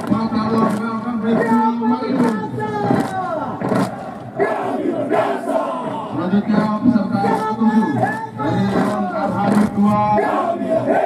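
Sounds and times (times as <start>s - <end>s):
group shouting war chant: 2.9s - 6.2s, 8.8s - 11.0s.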